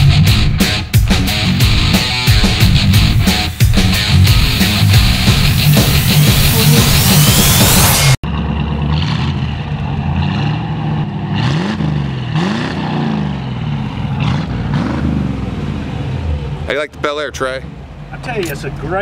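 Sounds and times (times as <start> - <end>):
heavy rock music: 0.0 - 8.2
car engine running and revving: 0.0 - 16.7.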